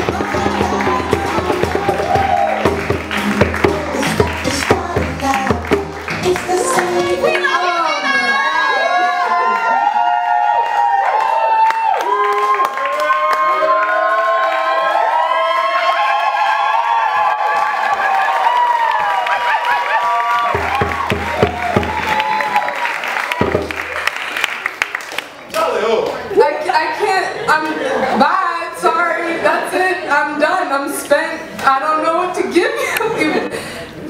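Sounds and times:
group of voices singing: 0.0s - 7.4s
cheering and applause: 0.0s - 26.3s.

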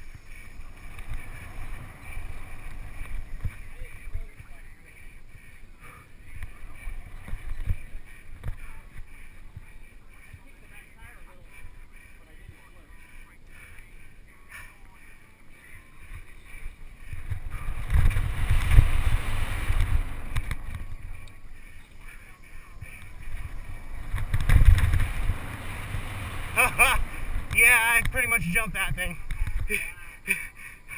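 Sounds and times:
wind buffeting microphone: 0.0s - 29.8s
bike tyres rumbling on trail: 0.0s - 30.9s.

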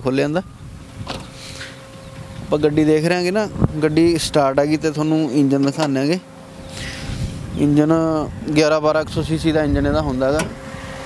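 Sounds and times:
power window motor running: 9.7s - 11.0s.

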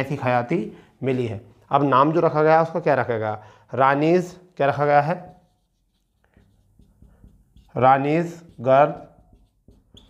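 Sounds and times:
marker writing on whiteboard: 4.0s - 10.0s.

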